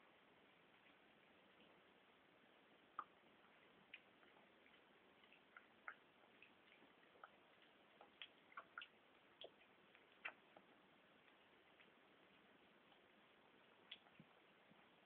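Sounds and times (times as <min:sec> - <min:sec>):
kitten eating wet food: 0:00.1 - 0:15.0.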